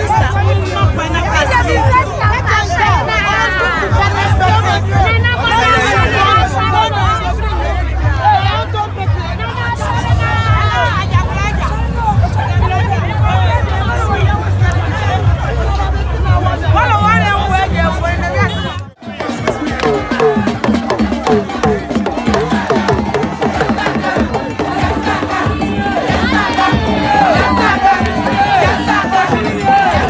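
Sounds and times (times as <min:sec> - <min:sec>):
crowd shouting: 0:00.0 - 0:30.0
music: 0:00.0 - 0:30.0.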